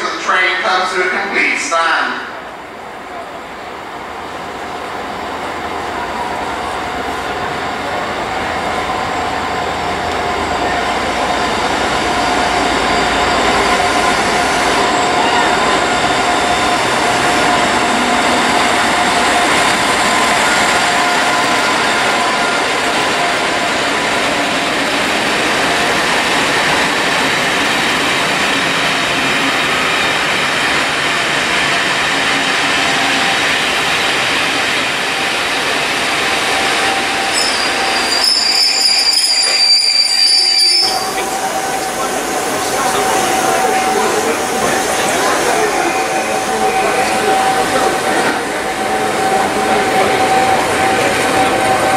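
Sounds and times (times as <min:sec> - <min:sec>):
train running noise: 0:00.0 - 0:51.9
train wheels and brakes squealing: 0:06.2 - 0:51.9.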